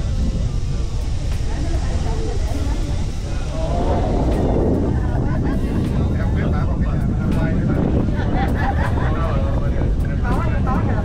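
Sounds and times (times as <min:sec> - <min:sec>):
cable car rumbling: 0:00.0 - 0:11.0
passengers talking: 0:00.0 - 0:11.0.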